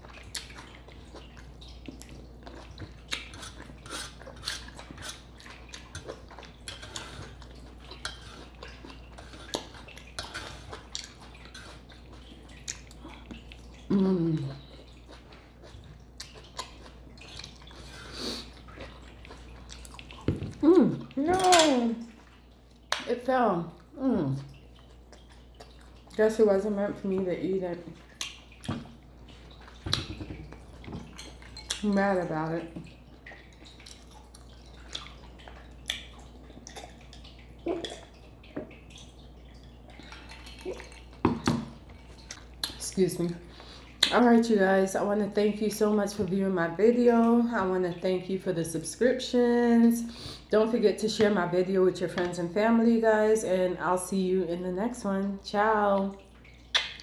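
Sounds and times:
close chewing: 0.0s - 21.2s, 23.8s - 26.4s, 32.8s - 42.8s
wet mouth clicks: 56.7s - 57.0s.

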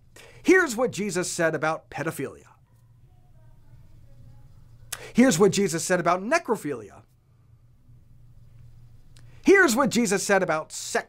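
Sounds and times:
low room hum: 0.0s - 11.0s
man speaking: 0.4s - 2.6s, 5.0s - 7.0s, 9.4s - 11.0s.

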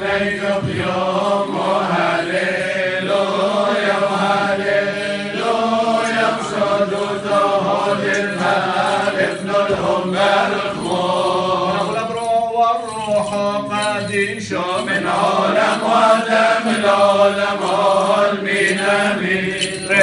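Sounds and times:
men chanting a hymn: 0.0s - 20.0s.

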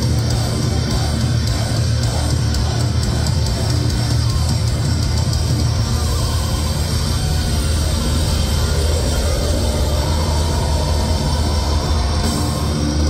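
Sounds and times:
live heavy metal band: 0.0s - 13.0s.

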